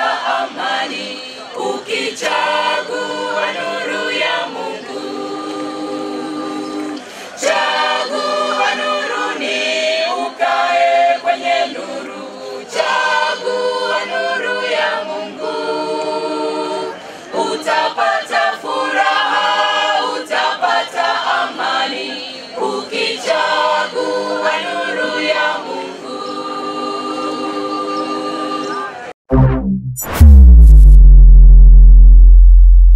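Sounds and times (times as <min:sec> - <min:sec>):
choir singing unaccompanied: 0:00.0 - 0:29.1.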